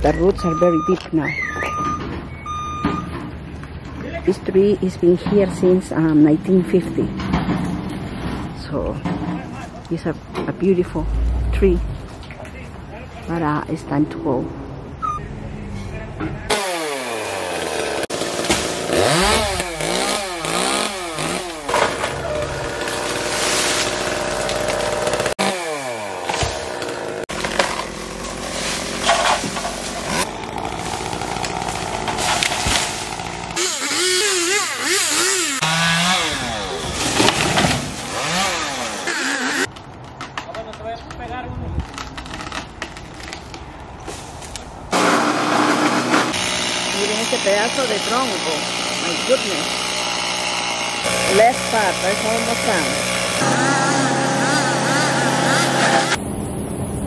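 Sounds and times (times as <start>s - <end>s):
chainsaw revving and cutting: 16.5s - 39.7s, 44.9s - 56.2s.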